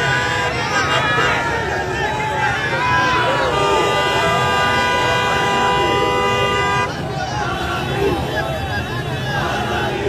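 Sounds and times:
vehicle horn blast: 0.0s - 1.5s, 3.2s - 7.0s
crowd shouting: 0.0s - 10.0s.

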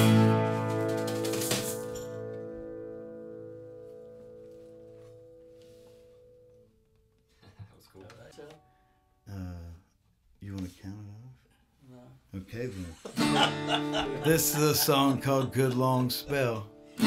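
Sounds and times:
acoustic guitar and dobro chord ringing: 0.0s - 6.9s, 8.5s - 9.6s, 13.2s - 17.0s.

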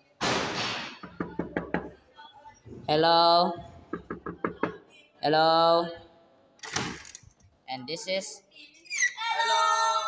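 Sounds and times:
knocks on a door: 1.0s - 1.9s, 3.9s - 4.8s.

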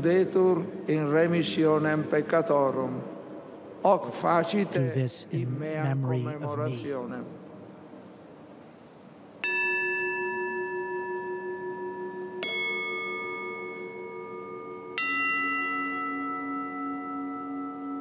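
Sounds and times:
bell ringing notes: 9.4s - 18.0s.

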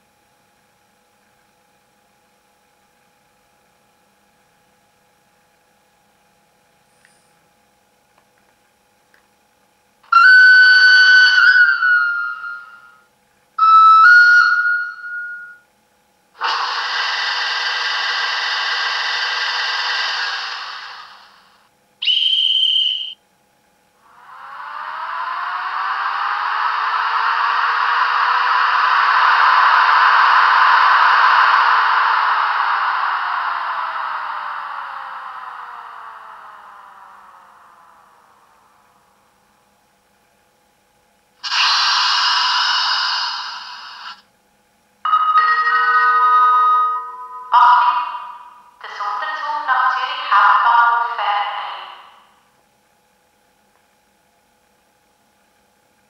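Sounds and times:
short high whistle: 10.1s - 13.0s, 13.6s - 15.6s, 16.4s - 21.4s, 22.0s - 23.2s, 41.4s - 44.2s
steady hiss: 16.4s - 21.7s, 24.0s - 39.7s, 41.4s - 44.3s
long swelling locomotive sound: 16.4s - 22.2s, 24.0s - 39.7s, 41.4s - 44.2s.

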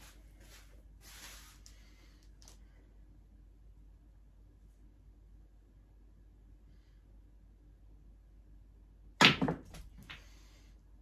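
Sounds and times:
cue striking snooker balls: 9.2s - 10.2s
snooker balls knocking: 9.2s - 10.2s.

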